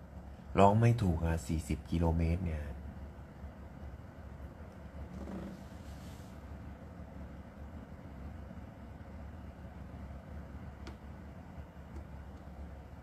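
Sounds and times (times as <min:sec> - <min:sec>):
low room rumble: 0:00.0 - 0:13.0.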